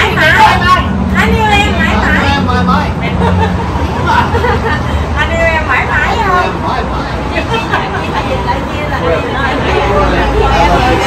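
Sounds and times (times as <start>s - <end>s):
people chatting and laughing: 0.0s - 11.0s
street traffic hum: 0.0s - 11.0s.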